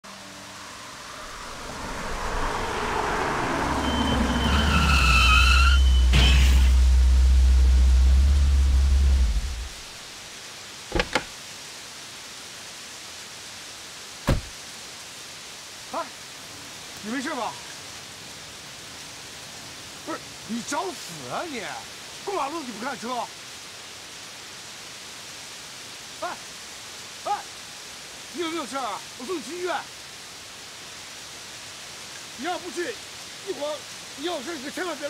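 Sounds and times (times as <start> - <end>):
steady rain: 0.0 - 35.0
tyre screech: 2.6 - 6.9
deep low rumble: 5.8 - 9.9
car hitting person thump: 10.9 - 11.3, 14.3 - 14.6
sharp knocks: 10.9 - 11.3, 14.3 - 14.6.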